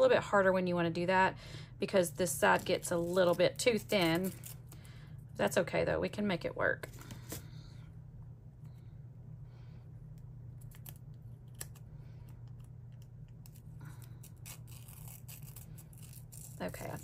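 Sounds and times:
low steady hum: 0:00.0 - 0:17.0
paper tape crinkling and tearing: 0:02.5 - 0:04.8, 0:10.6 - 0:11.8, 0:12.6 - 0:17.0.

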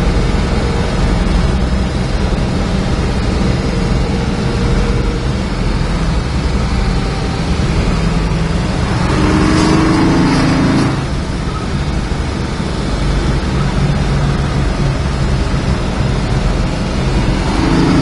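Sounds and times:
car engine cruising: 0:00.0 - 0:18.0
road and tyre noise: 0:00.0 - 0:18.0
truck passing whoosh: 0:00.0 - 0:18.0.

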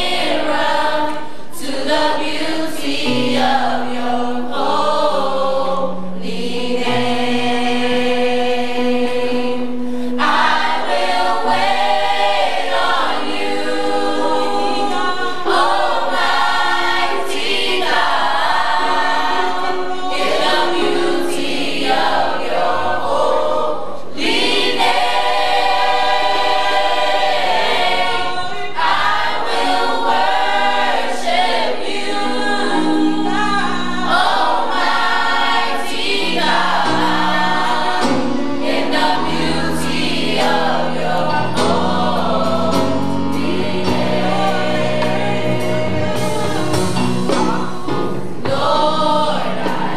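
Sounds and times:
choir singing in harmony: 0:00.0 - 0:49.9.

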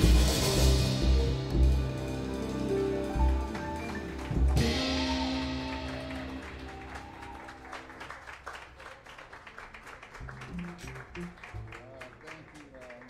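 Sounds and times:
jazz band closing chord: 0:00.0 - 0:08.0
audience clapping: 0:02.9 - 0:13.0
cymbal crash: 0:04.6 - 0:07.2.

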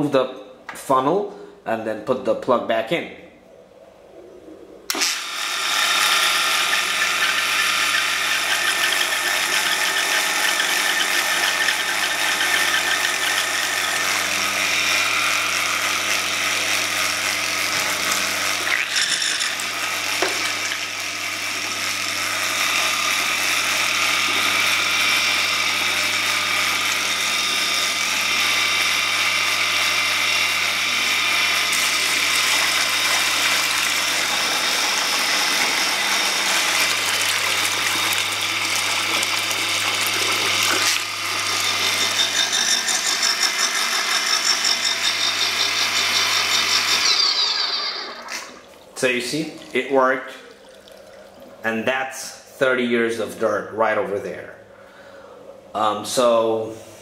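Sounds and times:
electric water pump humming: 0:04.0 - 0:57.0
water pouring: 0:36.5 - 0:41.1, 0:47.9 - 0:51.8.

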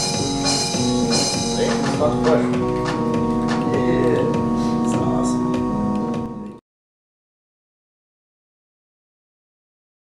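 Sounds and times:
percussive hits: 0:00.0 - 0:06.3
held synthesizer chord: 0:00.0 - 0:06.6.

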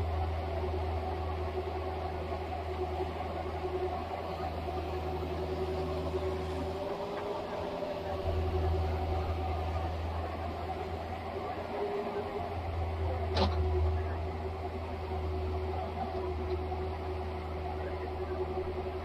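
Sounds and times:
excavator engine hum: 0:00.0 - 0:19.0.

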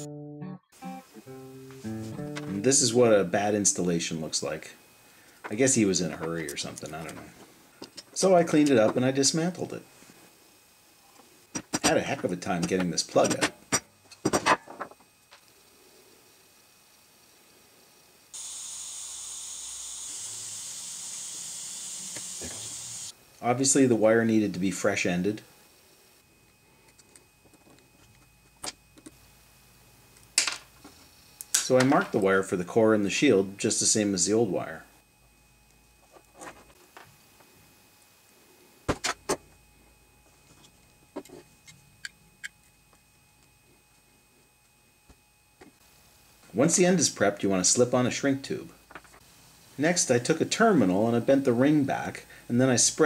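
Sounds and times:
butane soldering iron hissing: 0:15.4 - 0:26.3, 0:45.8 - 0:53.0.

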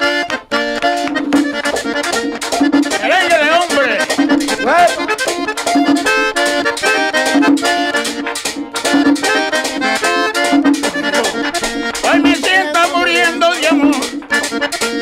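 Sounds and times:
accordion playing quick runs: 0:00.0 - 0:15.0
driving percussion beat: 0:00.7 - 0:15.0.

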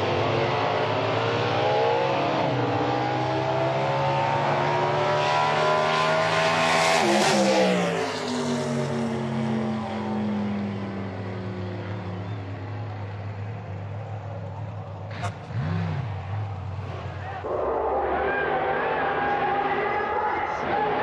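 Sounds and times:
drag car engine at high revs: 0:00.0 - 0:10.7, 0:15.0 - 0:17.2.

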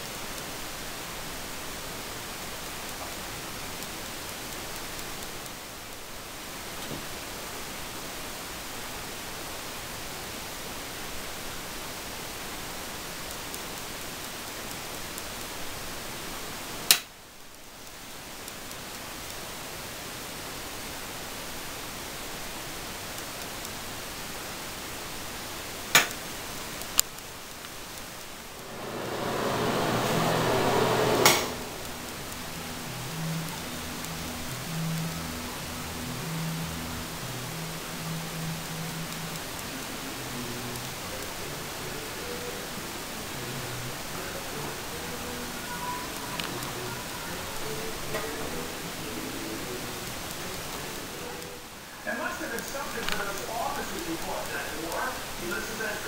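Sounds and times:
background hiss: 0:00.0 - 0:56.0
rushing noise: 0:27.8 - 0:56.0.

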